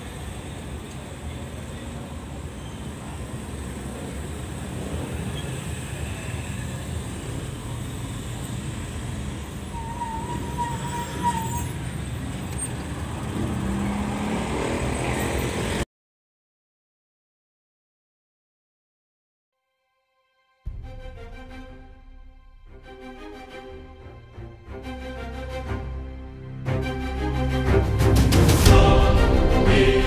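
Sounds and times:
truck engine low rumble: 0.0 - 14.2
road traffic passing: 0.0 - 15.9, 21.6 - 30.0.

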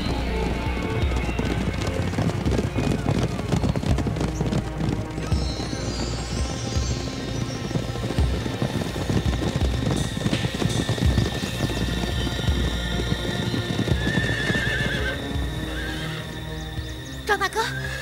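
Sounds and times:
horses neighing: 0.0 - 17.0
horse hooves pounding: 0.0 - 18.0
orchestral film music: 0.0 - 18.0.

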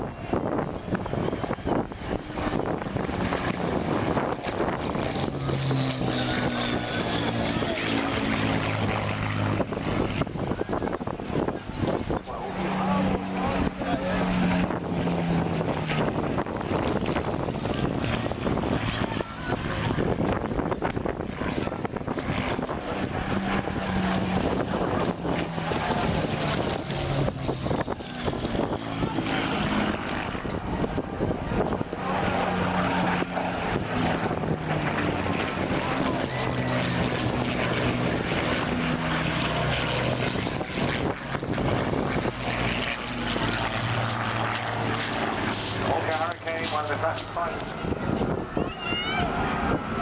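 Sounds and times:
propeller aircraft flying overhead: 0.0 - 50.0.

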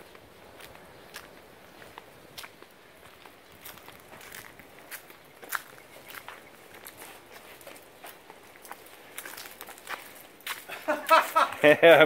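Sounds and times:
footsteps on leaf-strewn paving: 0.1 - 11.8.

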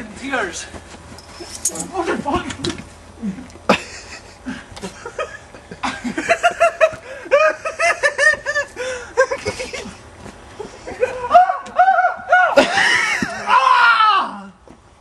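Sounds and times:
hearty laughter: 3.2 - 11.4, 12.3 - 13.5.

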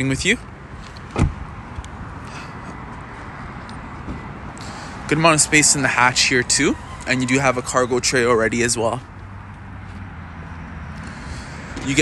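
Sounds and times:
outdoor background noise: 0.0 - 12.0
car door thud: 1.1 - 1.4.

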